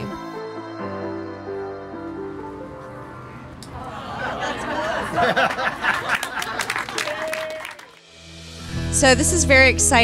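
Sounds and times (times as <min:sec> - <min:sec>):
people cheering: 0:03.7 - 0:08.0
people clapping: 0:05.2 - 0:08.0.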